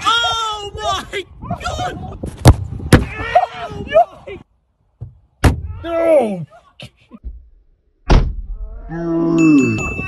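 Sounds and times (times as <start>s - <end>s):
football thunk on car door: 8.1s - 8.4s.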